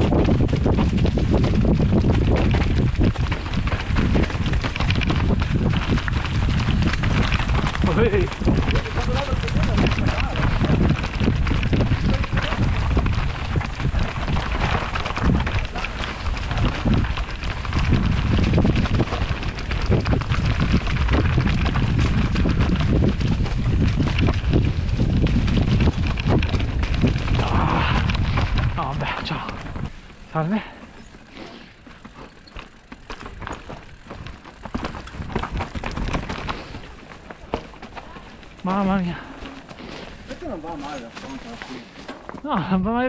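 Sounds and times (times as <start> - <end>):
wind on microphone: 0.0 - 30.0
bike chain and frame clatter: 0.0 - 42.4
tyres rattling over stones and leaves: 28.2 - 42.4.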